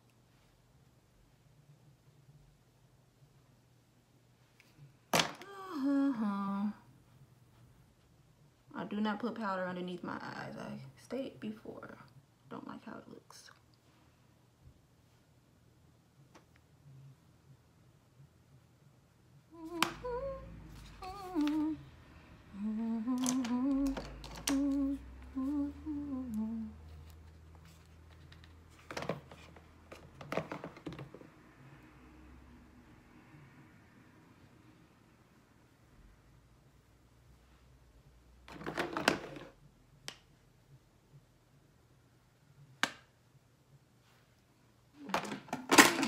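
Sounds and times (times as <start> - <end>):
woman humming: 5.4 - 6.9, 19.5 - 26.9.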